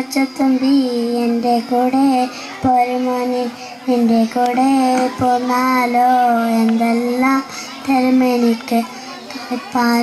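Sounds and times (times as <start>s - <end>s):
girl singing into a microphone: 0.0s - 10.0s.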